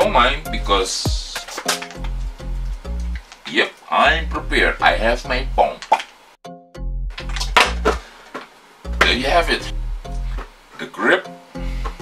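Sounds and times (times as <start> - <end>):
background music with bass line: 0.0 - 3.2, 4.1 - 5.7, 6.4 - 8.1, 8.9 - 10.6, 11.5 - 12.0.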